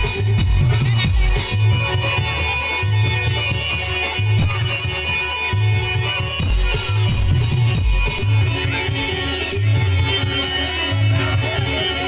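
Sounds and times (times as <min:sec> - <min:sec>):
loud amplified band music: 0:00.0 - 0:12.0.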